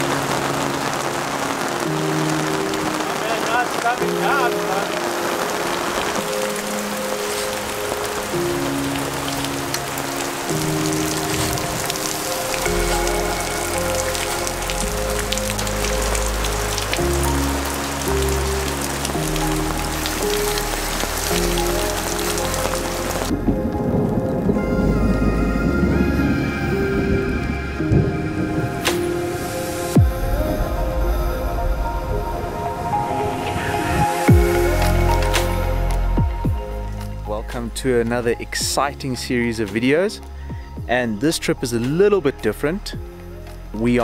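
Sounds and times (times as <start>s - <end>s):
music with slow held chords: 0.0s - 44.0s
steady rain falling: 0.0s - 44.0s
deep bass: 30.0s - 32.4s, 34.3s - 44.0s.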